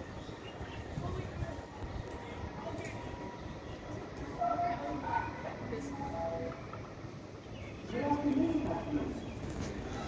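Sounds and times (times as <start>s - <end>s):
distant voices: 0.0s - 10.0s
faint constant hum: 0.0s - 10.0s.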